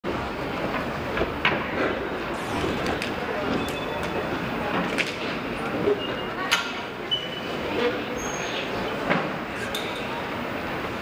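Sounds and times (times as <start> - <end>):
rumbling room noise of large hall: 0.1 - 11.0.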